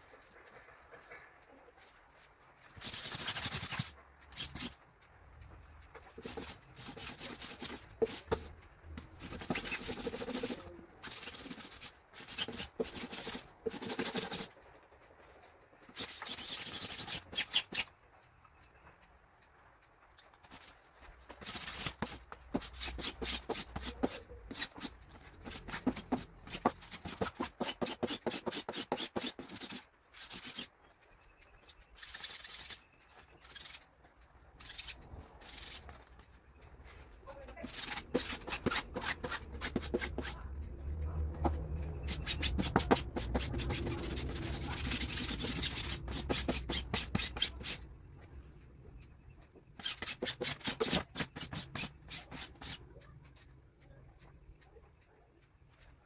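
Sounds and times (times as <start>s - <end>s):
lint roller crackling on cloth: 20.3s - 30.8s, 31.8s - 47.9s.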